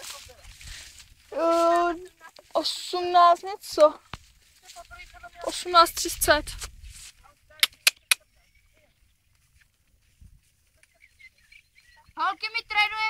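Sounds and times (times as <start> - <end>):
sharp clicks: 7.6 - 8.3.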